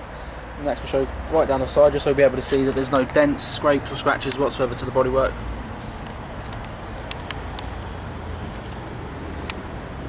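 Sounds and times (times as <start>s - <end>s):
distant road traffic rumble: 0.0s - 10.0s
light sharp clicks: 6.0s - 7.8s.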